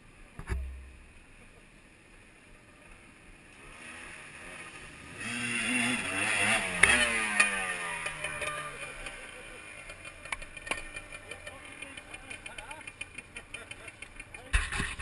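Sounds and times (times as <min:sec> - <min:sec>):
sharp knocks: 0:00.4 - 0:01.0
single thump: 0:00.4 - 0:01.0
motorcycle engine revving: 0:03.6 - 0:15.0.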